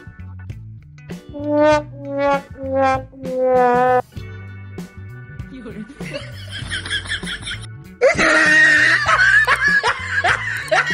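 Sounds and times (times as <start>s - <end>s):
high-pitched laughter: 6.1s - 10.9s.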